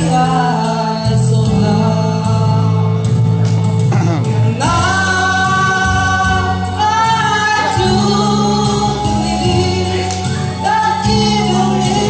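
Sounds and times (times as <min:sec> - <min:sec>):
karaoke backing track: 0:00.0 - 0:12.0
man singing a slow ballad: 0:00.0 - 0:12.0.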